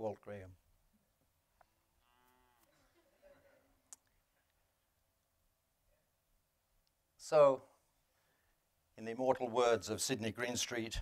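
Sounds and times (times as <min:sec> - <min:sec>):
faint cow moo: 0:02.0 - 0:03.0.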